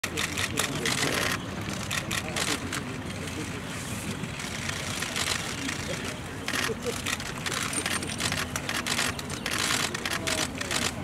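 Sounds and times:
distant traffic rumble: 0.0 - 11.0
faint voices: 0.0 - 11.0.

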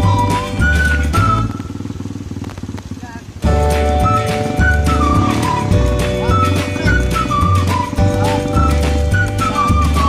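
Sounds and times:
background music: 0.0 - 1.7, 3.4 - 10.0
small motorcycle engine running: 0.0 - 10.0.

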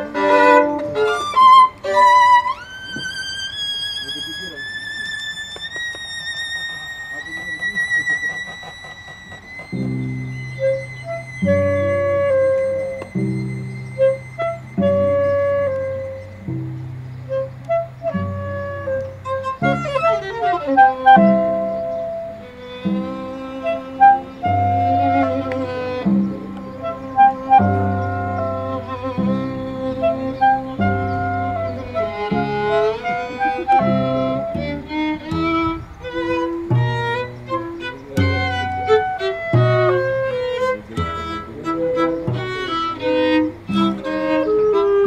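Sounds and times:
cello bowing low notes: 0.0 - 45.0
clarinet playing short notes: 0.0 - 45.0.

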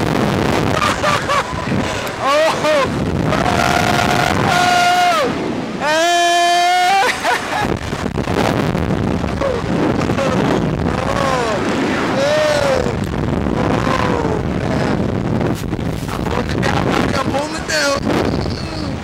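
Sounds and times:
wind rushing across microphone: 0.0 - 19.0.

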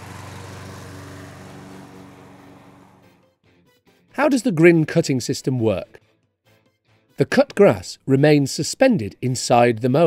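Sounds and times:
lawn mower engine running: 0.0 - 3.2.

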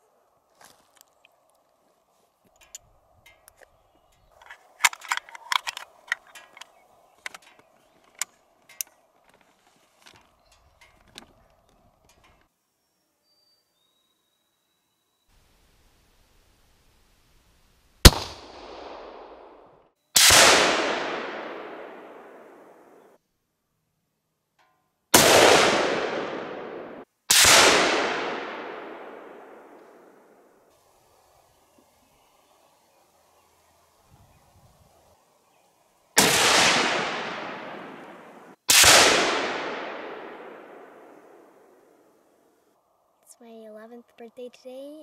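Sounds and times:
gunshot echo rolling: 18.0 - 23.0, 25.2 - 30.5, 36.2 - 42.2
rifle shots: 18.0 - 23.0, 25.2 - 30.4, 36.2 - 41.9.

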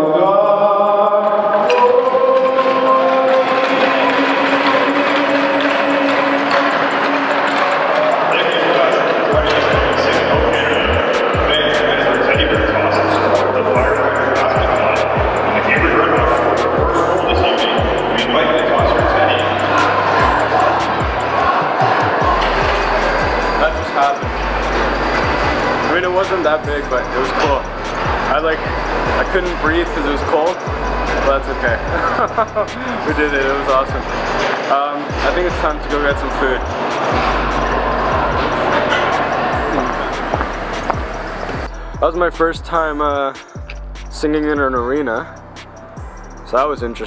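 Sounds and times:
crowd cheering and applauding: 1.5 - 26.2, 36.6 - 41.8.

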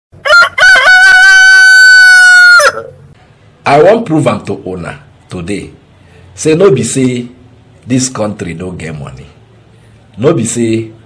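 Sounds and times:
rooster crowing: 0.2 - 3.0.

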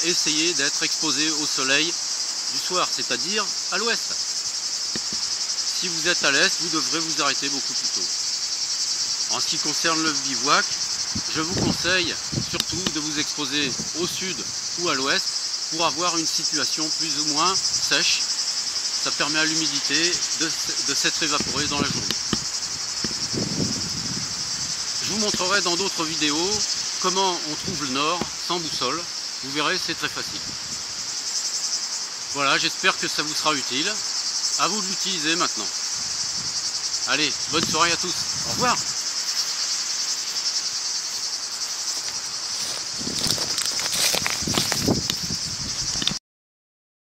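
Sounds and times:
insects chirring: 0.0 - 46.2
footsteps through dry grass: 21.2 - 26.8, 39.2 - 45.4.

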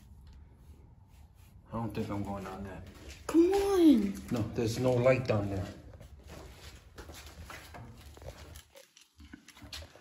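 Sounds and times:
footsteps on concrete floor: 2.0 - 10.0.

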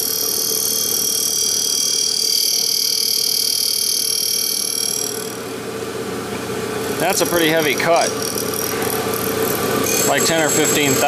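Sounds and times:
spindle motor hum: 0.0 - 11.0
grinding wheel hissing on steel: 6.8 - 11.0.

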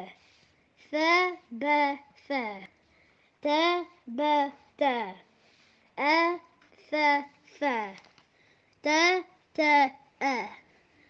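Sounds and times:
child chanting syllables: 0.8 - 2.8, 3.4 - 5.3, 6.0 - 8.1, 8.8 - 10.7.

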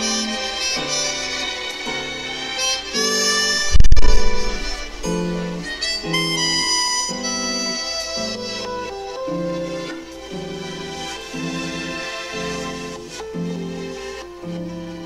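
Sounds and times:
jazz melody with walking bass: 2.6 - 10.1
loud low thump: 3.6 - 6.1.

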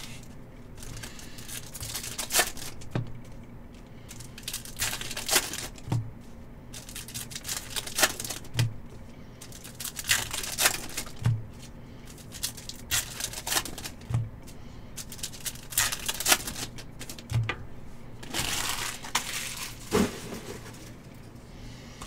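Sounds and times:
foil wrapper crinkling and tearing: 0.0 - 2.9, 4.1 - 5.9, 6.7 - 8.6, 9.4 - 14.2, 15.0 - 17.4, 18.2 - 20.9.

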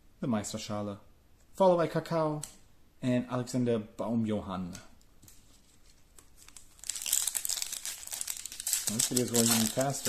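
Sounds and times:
foil card pack crinkling: 5.6 - 10.0.

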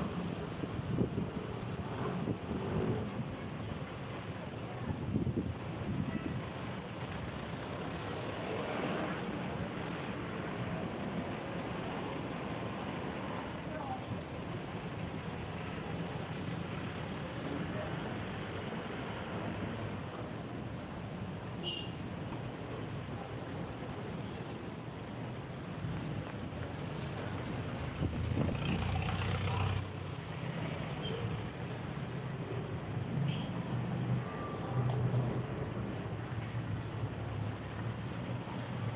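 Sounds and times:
street traffic passing: 0.0 - 38.9
cars driving past: 25.3 - 38.9.

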